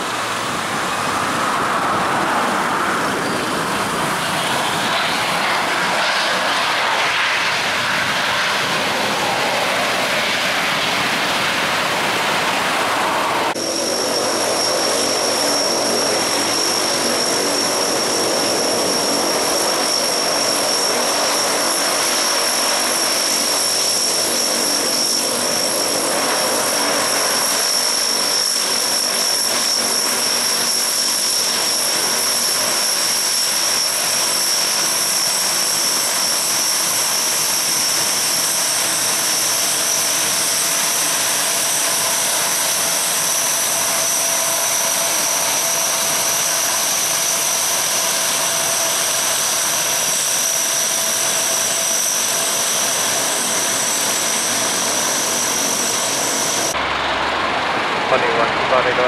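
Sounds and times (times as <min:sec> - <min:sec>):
high-pitched turbine whine: 0:00.0 - 0:59.0
propeller drone: 0:00.0 - 0:59.0.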